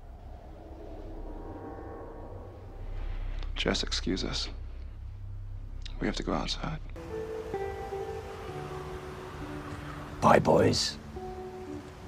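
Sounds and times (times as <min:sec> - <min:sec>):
steady low hum: 0:00.0 - 0:07.0
soft sustained music chord: 0:01.4 - 0:12.0.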